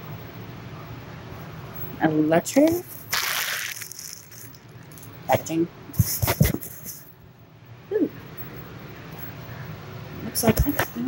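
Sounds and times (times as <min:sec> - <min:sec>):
packaging being torn open: 0:03.1 - 0:04.6.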